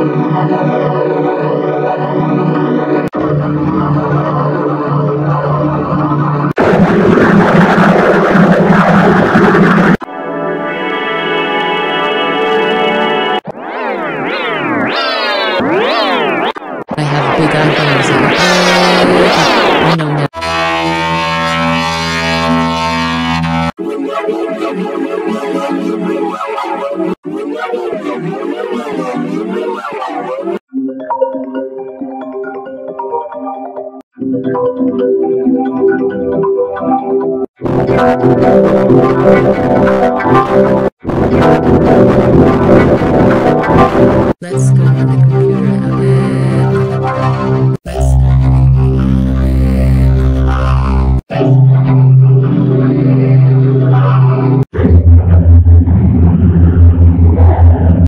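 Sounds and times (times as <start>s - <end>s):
distorted droning buzz: 0.0s - 12.0s, 14.8s - 23.8s, 37.6s - 44.4s, 45.1s - 58.0s
loud held electronic chord: 15.6s - 26.4s, 37.6s - 58.0s.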